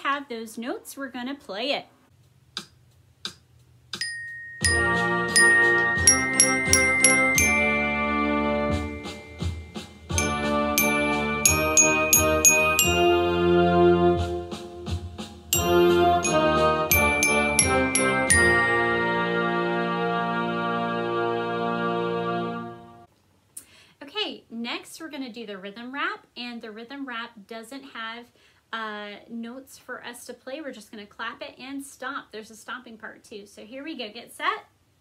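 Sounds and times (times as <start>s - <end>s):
glockenspiel melody: 4.0s - 14.3s, 15.6s - 20.4s
backing track of sustained chords: 4.0s - 23.0s.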